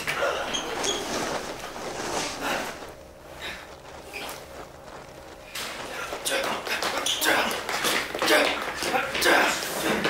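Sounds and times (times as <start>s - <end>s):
soft swishes: 0.0s - 5.8s
scuffling and rustling of cloth: 0.3s - 7.4s.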